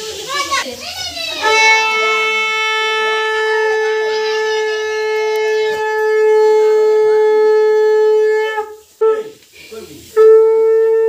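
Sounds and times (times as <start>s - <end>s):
conch shell blown: 1.4s - 9.4s, 10.0s - 11.0s.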